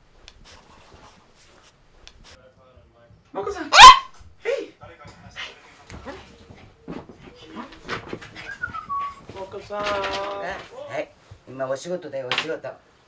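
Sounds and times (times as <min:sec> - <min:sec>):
small dog barking: 0:03.7 - 0:04.2.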